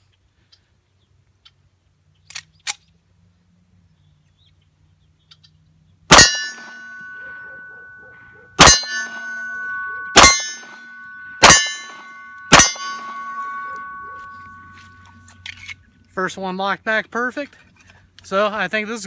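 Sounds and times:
pistol shots: 0:06.1 - 0:08.0, 0:08.6 - 0:14.7
steel target ringing: 0:06.1 - 0:15.4.

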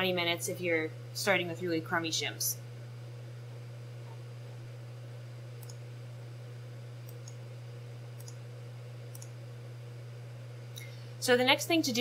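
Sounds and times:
low electrical hum: 0:00.0 - 0:12.0
computer mouse clicks: 0:05.6 - 0:05.8, 0:08.2 - 0:08.4, 0:09.1 - 0:09.3.

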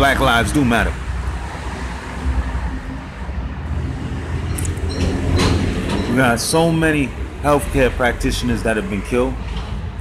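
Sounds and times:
passing vehicle rumble: 0:00.0 - 0:10.0.

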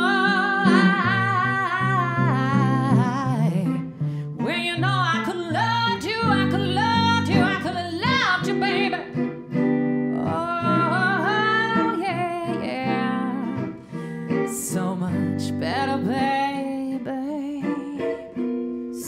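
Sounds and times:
electric guitar chords: 0:00.0 - 0:19.0
woman singing soulful song: 0:00.0 - 0:19.0.

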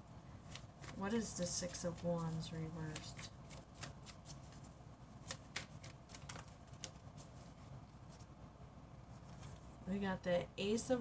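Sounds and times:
cards being shuffled: 0:00.4 - 0:08.3, 0:09.2 - 0:09.7.

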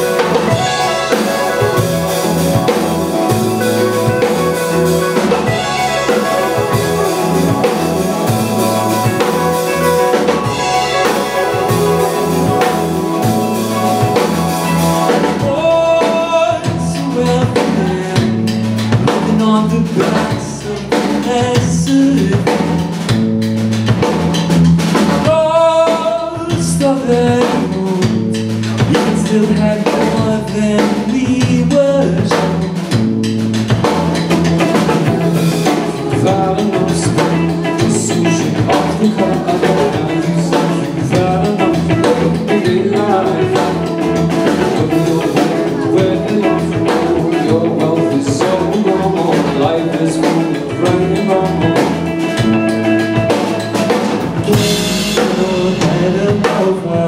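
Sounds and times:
bass guitar: 0:00.0 - 0:57.0
drum kit steady beat: 0:00.0 - 0:57.0
electric guitars: 0:00.0 - 0:57.0
keyboard: 0:00.0 - 0:57.0.

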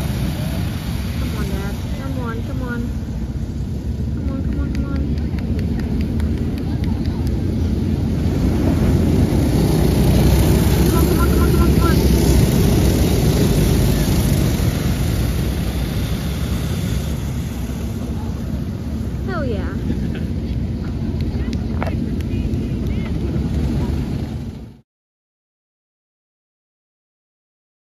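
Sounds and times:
go-kart engines racing: 0:00.0 - 0:24.8.

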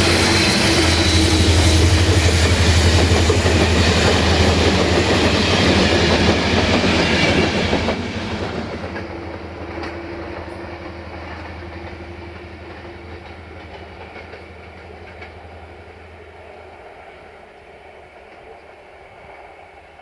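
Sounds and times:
train wheels clattering over rails: 0:00.0 - 0:16.3.

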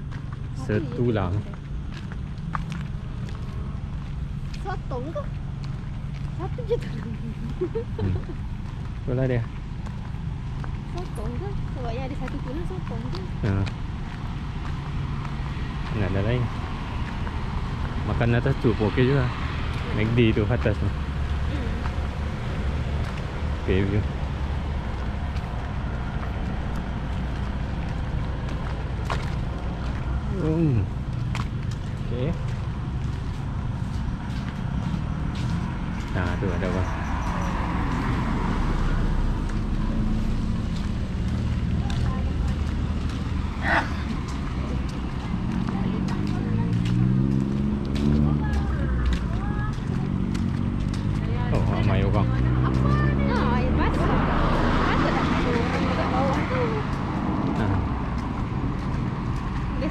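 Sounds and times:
road traffic rumble: 0:00.0 - 0:59.9
vehicle engine hum: 0:00.0 - 0:59.9
car passing tyre noise: 0:13.4 - 0:59.9.

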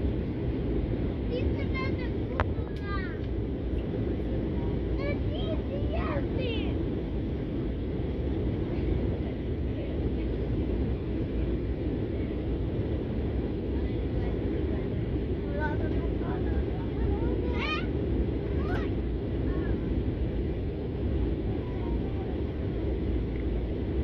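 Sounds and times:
jet engine and airflow rumble: 0:00.0 - 0:24.0.

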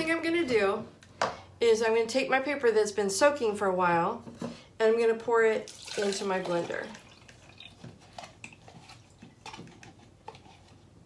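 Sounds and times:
water dripping: 0:05.6 - 0:08.6.

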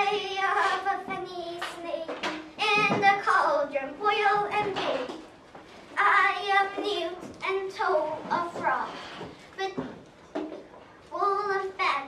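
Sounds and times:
child singing: 0:00.0 - 0:05.2, 0:06.0 - 0:08.9, 0:11.1 - 0:12.0.

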